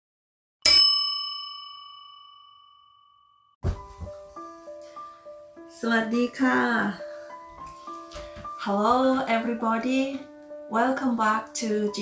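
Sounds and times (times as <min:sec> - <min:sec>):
bright bell ding: 0:00.7 - 0:03.1.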